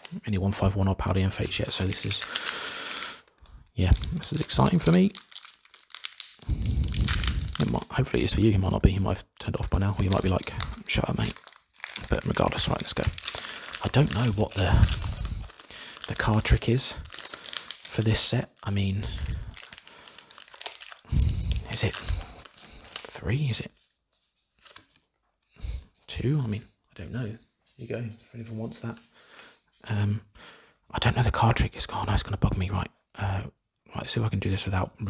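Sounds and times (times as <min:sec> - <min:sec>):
foil pack crinkling: 0:01.4 - 0:08.8, 0:09.5 - 0:23.6.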